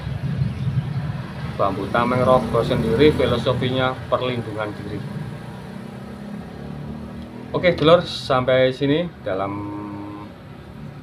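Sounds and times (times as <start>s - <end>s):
vehicle engine hum: 0.0s - 11.0s.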